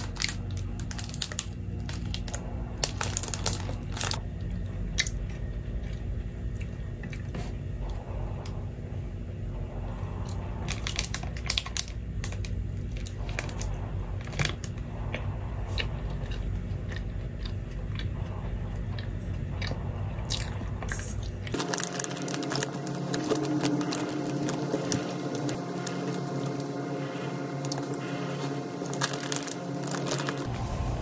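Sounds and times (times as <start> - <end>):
low hum: 0.0 - 31.0
crunchy chewing: 10.2 - 27.0, 27.6 - 30.5.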